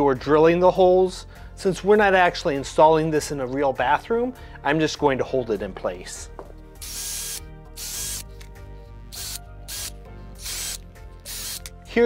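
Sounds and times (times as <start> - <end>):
background music: 0.0 - 12.0
cordless drill boring into wood: 6.8 - 8.3, 9.2 - 11.7.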